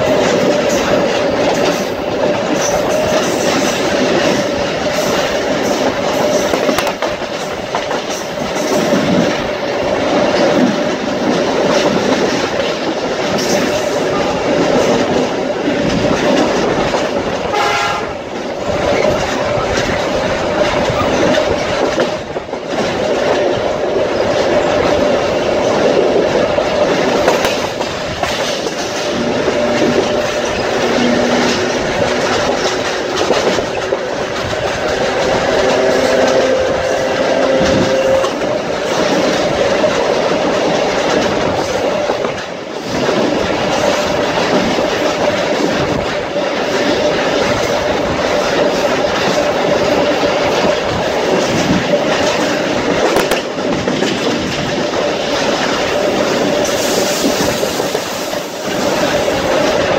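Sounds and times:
clicking over rail joints: 0:00.0 - 0:59.9
wind and wheel noise: 0:00.0 - 0:59.9
train horn blast: 0:17.5 - 0:18.3, 0:34.8 - 0:38.4.

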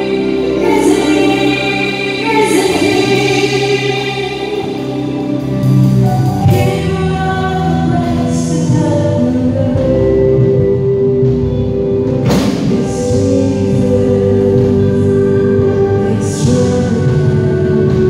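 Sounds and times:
worship band playing: 0:00.0 - 0:18.0.

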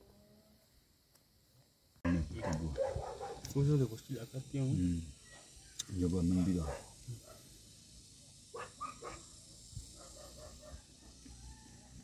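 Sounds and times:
dog barking faintly: 0:02.4 - 0:03.6, 0:06.6 - 0:07.5, 0:10.0 - 0:10.9.

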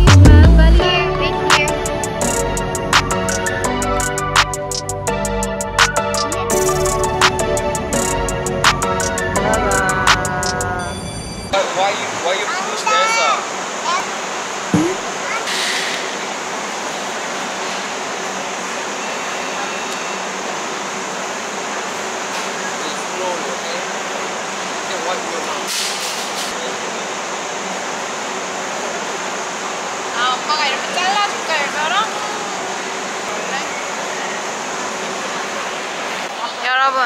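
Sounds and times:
air-handling noise: 0:14.7 - 0:15.2.

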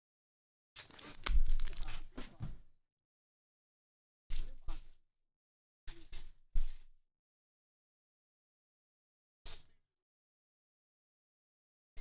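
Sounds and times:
foil wrappers crinkling: 0:00.8 - 0:02.2.

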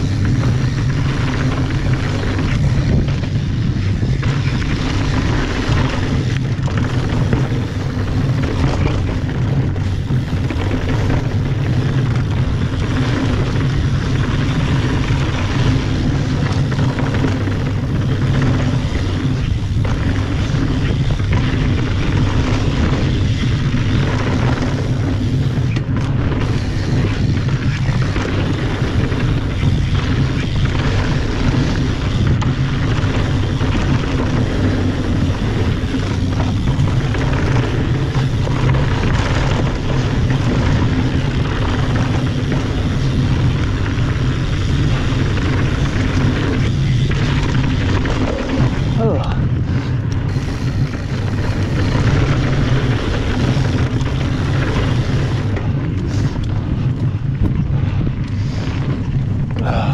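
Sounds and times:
bike rattling: 0:00.0 - 0:59.9
bike tyre noise: 0:00.0 - 0:59.9
wind buffeting microphone: 0:00.0 - 0:59.9.

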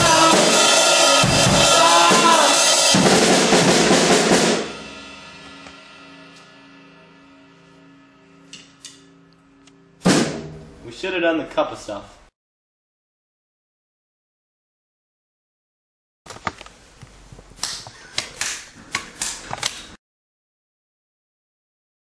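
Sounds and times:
drum kit played loudly: 0:00.0 - 0:06.3, 0:10.0 - 0:10.7.

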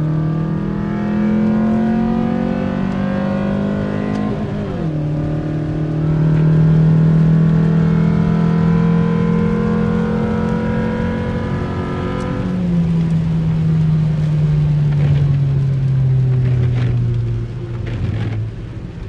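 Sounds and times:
car engine accelerating: 0:00.0 - 0:19.0.

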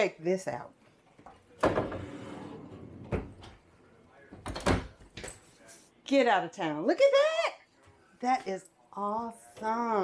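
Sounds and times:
cabinet doors knocking shut: 0:01.6 - 0:02.2
cabinet doors sliding rub: 0:01.7 - 0:03.4.

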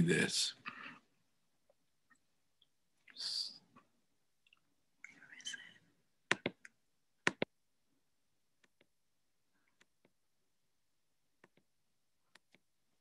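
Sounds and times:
computer mouse clicks: 0:12.3 - 0:12.6.

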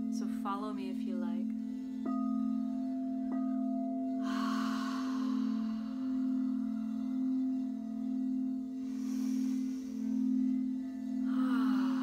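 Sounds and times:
singing bowls low pulsing tone: 0:00.0 - 0:12.0
soft airy hiss: 0:00.0 - 0:12.0.

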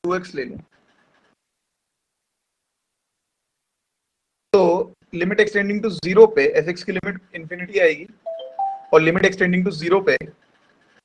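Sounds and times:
two-note electronic chime: 0:08.3 - 0:09.2
person speaking: 0:08.3 - 0:09.4.

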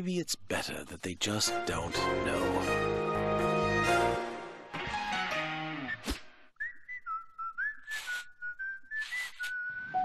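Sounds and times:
whistled tune: 0:05.8 - 0:10.0.

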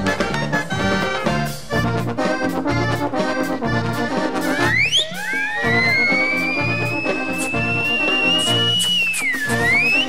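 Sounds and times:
brass band playing: 0:00.0 - 0:10.0
high thin rising tone: 0:04.6 - 0:10.0.

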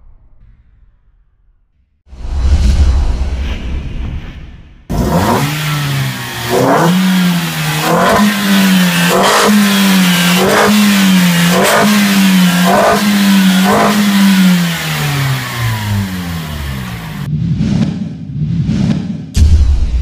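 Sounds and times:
car engine revving: 0:04.9 - 0:19.3.

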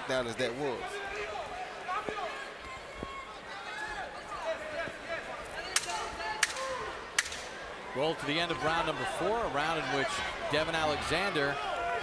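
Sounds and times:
arena crowd noise: 0:00.0 - 0:12.0
people shouting: 0:08.3 - 0:12.0.

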